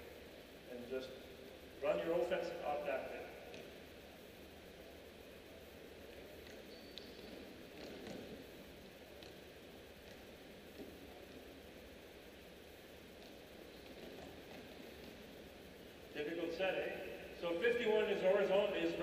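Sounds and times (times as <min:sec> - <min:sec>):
sports arena ambience: 0:00.0 - 0:19.0
shoe squeak: 0:06.6 - 0:08.4.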